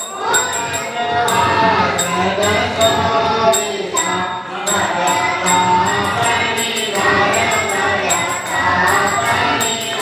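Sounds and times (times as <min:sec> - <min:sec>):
group singing devotional chant: 0:00.0 - 0:10.0
jingling metal percussion: 0:00.0 - 0:10.0.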